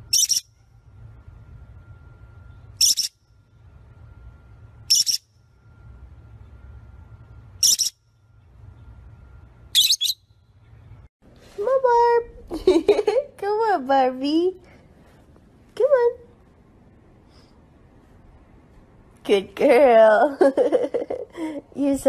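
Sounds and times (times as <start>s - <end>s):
low steady hum: 0.0s - 22.0s
parrot squawking: 0.1s - 0.5s, 2.8s - 3.2s, 4.9s - 5.2s, 7.6s - 8.0s, 9.7s - 10.2s.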